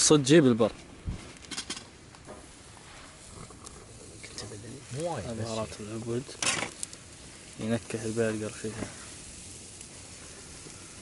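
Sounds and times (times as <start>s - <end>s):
faint steady sizzling: 0.0s - 11.0s.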